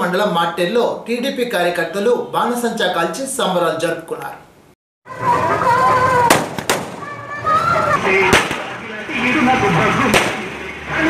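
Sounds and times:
sharp bangs: 5.3 - 9.1, 10.0 - 10.8.

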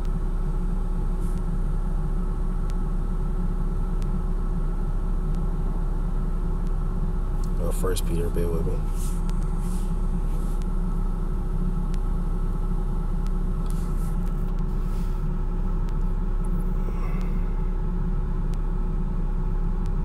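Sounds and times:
faint constant hum: 0.0 - 20.0
low machine rumble: 0.0 - 20.0.

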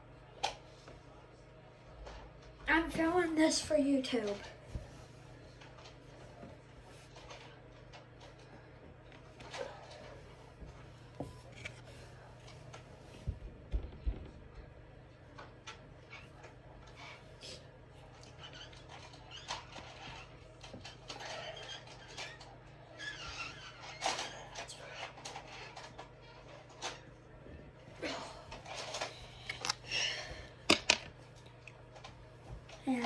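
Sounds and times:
steady low hum: 24.0 - 33.0.

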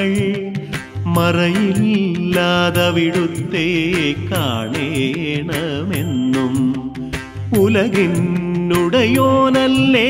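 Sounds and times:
devotional song melody: 0.0 - 10.0
percussion strokes: 0.0 - 10.0.

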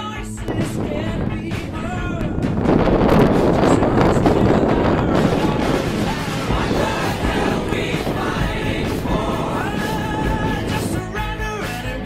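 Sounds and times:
wind buffeting microphone: 0.0 - 11.8.

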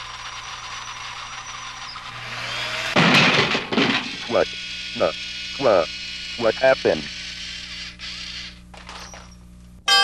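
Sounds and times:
robot arm motor whirring: 0.0 - 3.0, 4.0 - 9.4
loud harsh burst of noise: 2.0 - 7.3.

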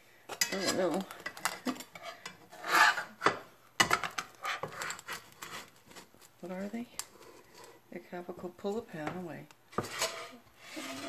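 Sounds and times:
wooden spatula scraping pan: 0.3 - 11.0.

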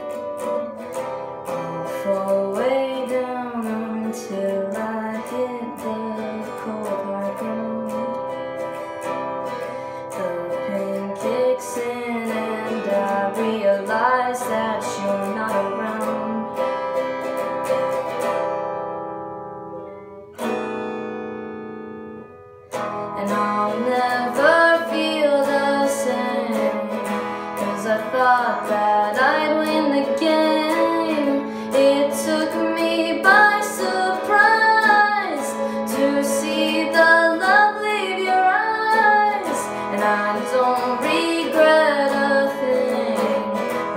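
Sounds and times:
acoustic guitar strumming: 0.0 - 43.9.

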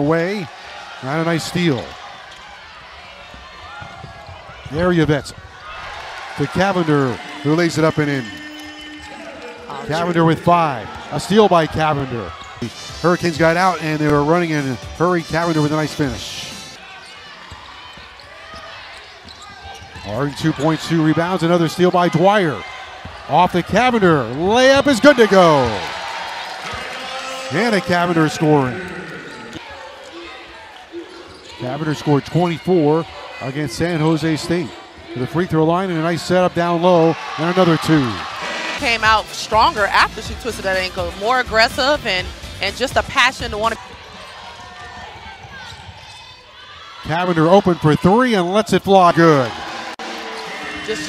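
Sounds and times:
crowd murmur: 0.0 - 13.2
arena crowd murmur: 0.0 - 51.0
faint sneaker squeaks: 16.9 - 20.8, 31.0 - 31.8, 44.2 - 46.8.

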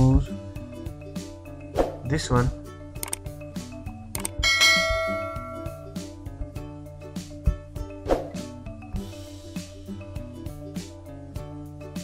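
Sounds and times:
quiet background music: 0.0 - 12.0
click sound effect: 3.0 - 3.2, 4.1 - 4.4
bright bell ding: 4.4 - 6.0.

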